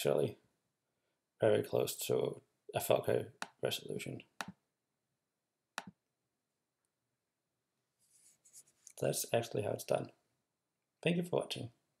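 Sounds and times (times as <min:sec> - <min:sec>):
faint scratchy rustling: 0:08.0 - 0:09.3.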